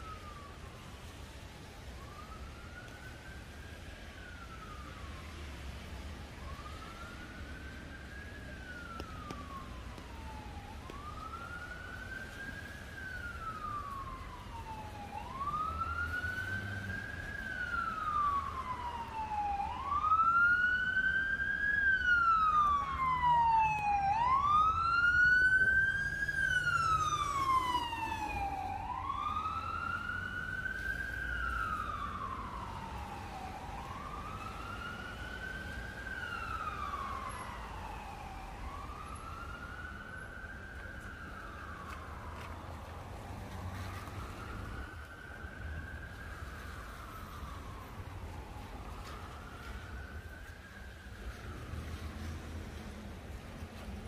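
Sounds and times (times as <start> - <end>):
emergency vehicle siren wailing: 0.0 - 54.0.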